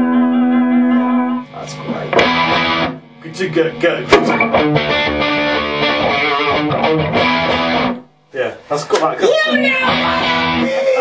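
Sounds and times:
overdriven electric guitar riff: 0.0 - 3.2, 4.0 - 8.1, 9.5 - 11.0.

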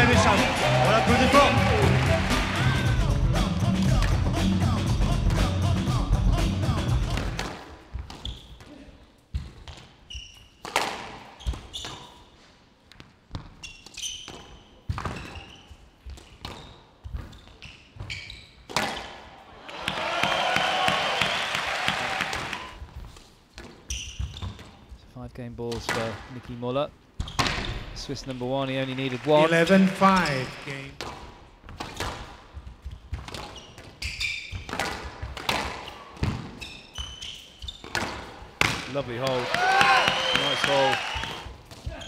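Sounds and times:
loud music: 0.0 - 7.4
shoes squeaking on court floor: 7.8 - 19.3, 22.7 - 25.1, 30.0 - 39.3, 40.0 - 42.0
squash ball hitting rackets and walls: 9.3 - 12.3, 13.0 - 21.4, 23.0 - 24.8, 27.2 - 27.9, 31.0 - 39.9.

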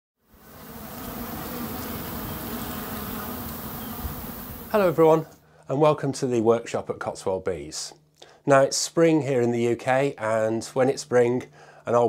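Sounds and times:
bees buzzing: 0.3 - 5.3.

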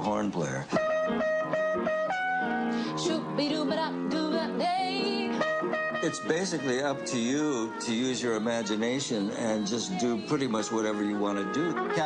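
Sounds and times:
trumpet playing jazz phrase: 0.8 - 3.5, 5.2 - 12.0.

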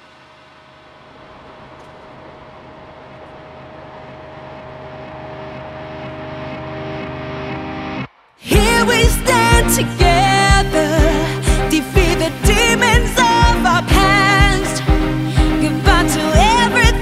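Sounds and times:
symphonic metal droning swell: 0.0 - 17.0.

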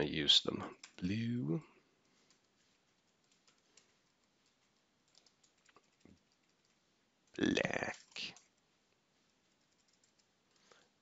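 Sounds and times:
keyboard typing: 0.7 - 1.1, 2.0 - 8.6, 9.3 - 11.0.

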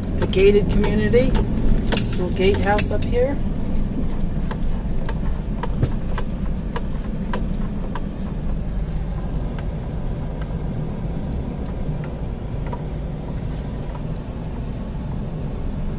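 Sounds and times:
car engine and tyre rumble: 0.0 - 15.9.

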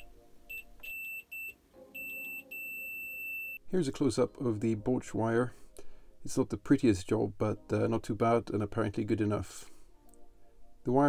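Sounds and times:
multimeter continuity beeping: 0.0 - 3.6.

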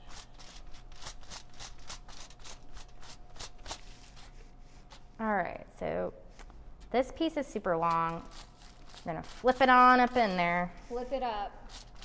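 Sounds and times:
brush stroking hair on foil: 7.8 - 12.0.

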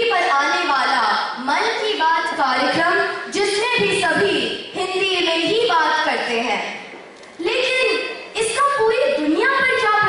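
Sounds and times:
girl speaking into microphone: 0.0 - 10.0.

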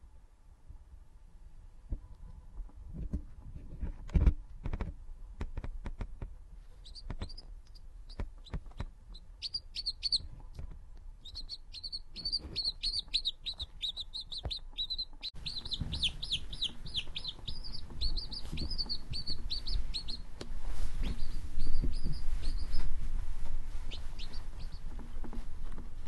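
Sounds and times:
quail chick peeping: 6.7 - 23.1, 23.7 - 25.4.

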